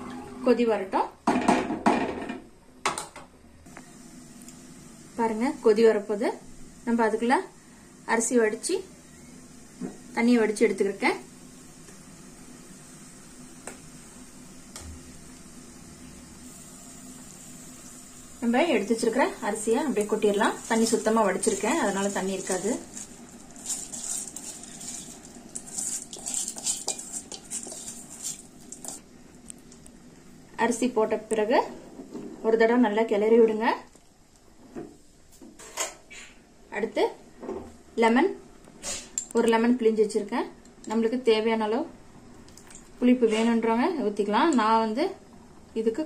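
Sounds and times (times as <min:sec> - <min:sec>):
pot boiling with soft hiss: 0:03.6 - 0:46.0
spatula stirring food in pot: 0:19.0 - 0:29.1
spatula scraping and knocking pot: 0:20.7 - 0:29.0.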